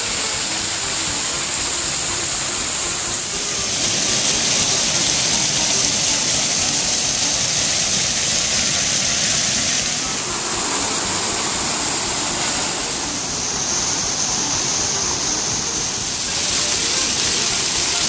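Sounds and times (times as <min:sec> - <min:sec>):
waterfall rushing over stone wall: 0:00.0 - 0:18.0.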